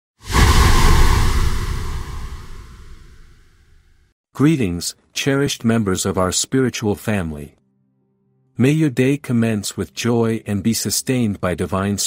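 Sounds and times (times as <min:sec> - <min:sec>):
cinematic whoosh and boom: 0:00.2 - 0:03.7.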